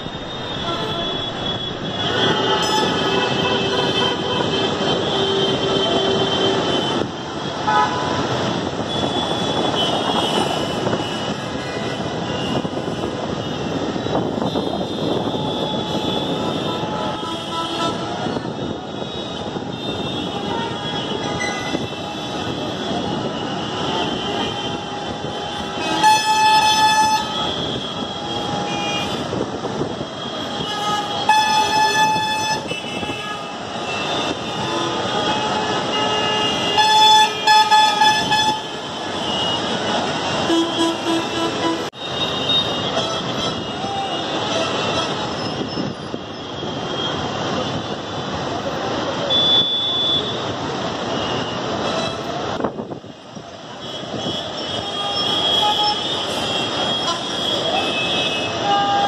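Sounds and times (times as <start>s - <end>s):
vehicle horns: 0.0s - 48.4s, 49.1s - 52.8s, 53.7s - 59.0s
traffic engine and road hum: 0.0s - 59.0s
long loud horn blasts: 0.2s - 29.4s, 30.1s - 45.4s.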